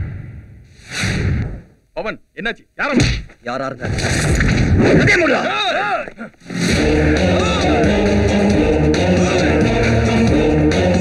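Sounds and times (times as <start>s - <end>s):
music track: 6.6s - 11.0s.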